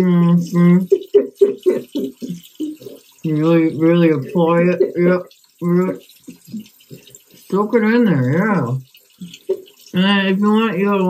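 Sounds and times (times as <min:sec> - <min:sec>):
person laughing: 0:00.5 - 0:03.0
tap running into sink: 0:08.9 - 0:09.9.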